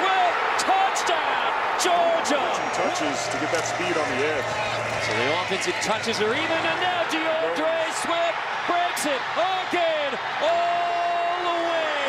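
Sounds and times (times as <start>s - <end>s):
raised voices and shouts: 0.0s - 12.0s
stadium crowd din: 0.0s - 12.0s.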